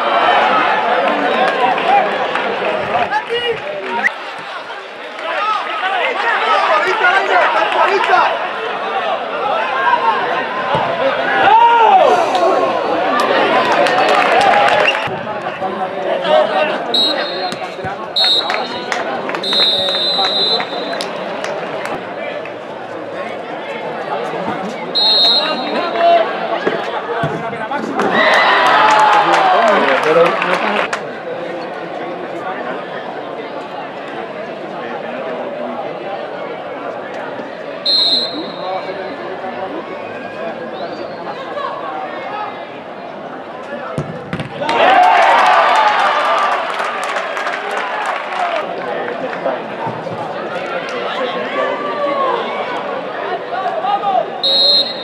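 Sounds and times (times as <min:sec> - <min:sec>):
players and spectators shouting: 0:00.0 - 0:55.0
referee's whistle blasts: 0:16.9 - 0:21.1, 0:24.9 - 0:25.8, 0:37.8 - 0:39.0, 0:54.4 - 0:55.0.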